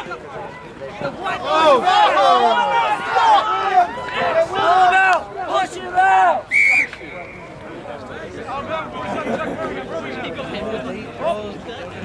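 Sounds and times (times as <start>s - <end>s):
crowd noise: 0.0s - 12.0s
loud shout: 1.2s - 7.0s
referee's whistle blast: 6.5s - 7.6s.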